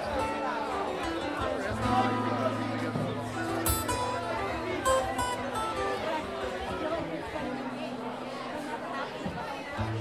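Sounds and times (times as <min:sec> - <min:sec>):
crowd chatter: 0:00.0 - 0:10.0
soft acoustic guitar playing: 0:00.0 - 0:10.0.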